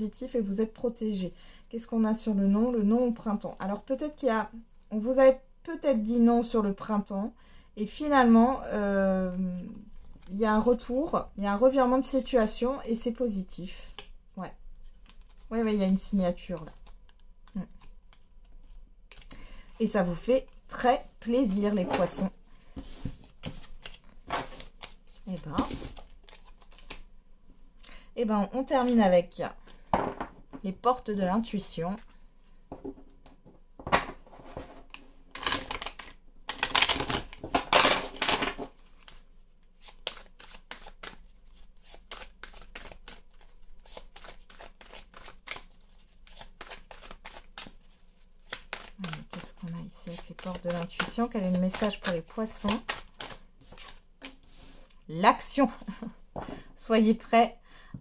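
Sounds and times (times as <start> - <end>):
cards being shuffled: 22.8 - 27.1, 34.3 - 54.9
cards clicking and tapping: 48.5 - 49.4, 50.4 - 54.4.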